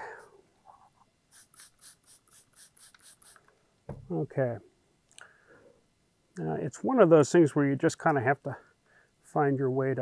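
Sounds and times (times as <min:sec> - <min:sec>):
spray bottle squirting: 0:01.3 - 0:03.4.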